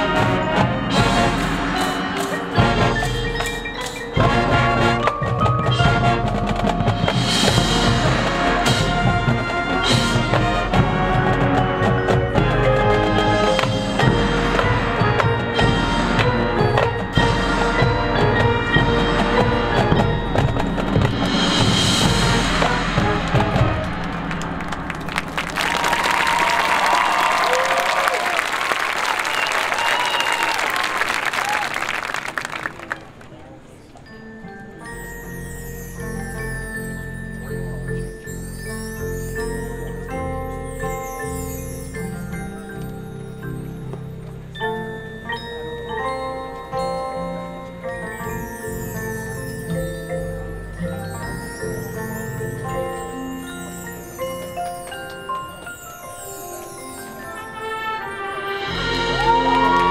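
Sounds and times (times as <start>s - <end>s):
marching band playing: 0.0s - 33.0s, 57.0s - 59.9s
crowd applauding and cheering: 23.4s - 33.4s, 58.7s - 59.9s.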